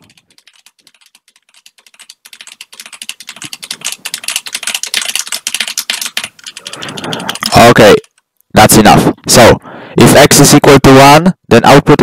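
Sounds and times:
computer keyboard typing: 0.0 - 9.5.

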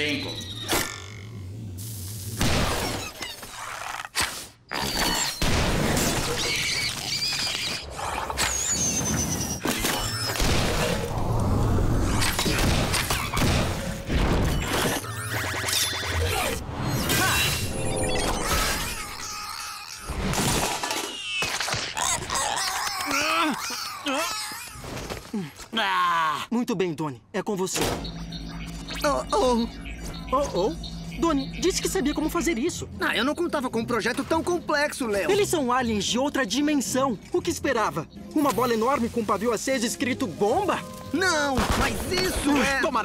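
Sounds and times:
cartoon impacts and crashes: 2.4 - 3.6, 4.2 - 6.7, 9.6 - 11.1, 12.2 - 15.1.

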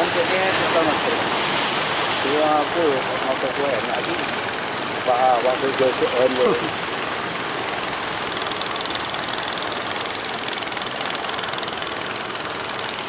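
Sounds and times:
boat engine running: 0.0 - 13.0.

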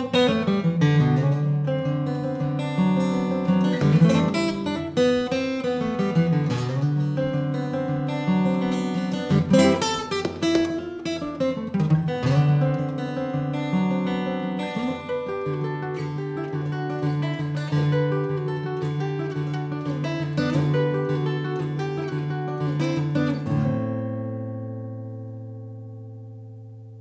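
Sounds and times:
acoustic guitar playing chords: 0.0 - 27.0.

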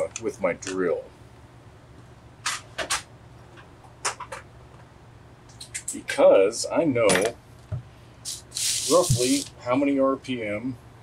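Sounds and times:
low steady hum: 0.0 - 2.5, 3.1 - 11.0.

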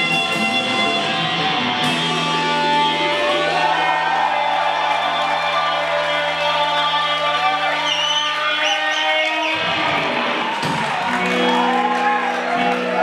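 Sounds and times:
sliding guitar notes: 0.0 - 4.3
psychedelic rock band playing live: 0.0 - 8.6, 9.2 - 13.0.

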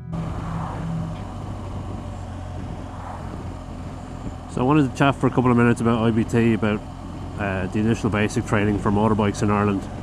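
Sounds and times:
wind noise: 0.0 - 4.6
motorcycle engine running: 0.0 - 10.0.

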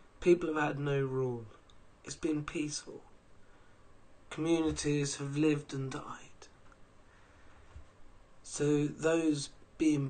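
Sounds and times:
man speaking: 0.2 - 3.2, 4.3 - 6.6, 8.4 - 10.0.

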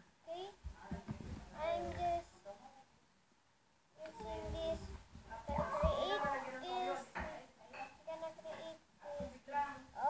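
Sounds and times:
child singing wordlessly: 0.3 - 0.8, 1.6 - 2.6, 4.0 - 7.2.

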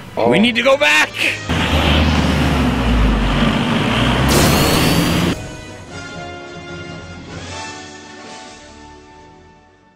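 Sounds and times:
car driving rushing rumble: 1.5 - 6.0.

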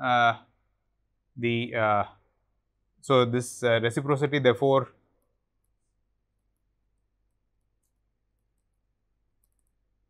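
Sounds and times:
stylus ticking on pen tablet: 5.6 - 10.0.

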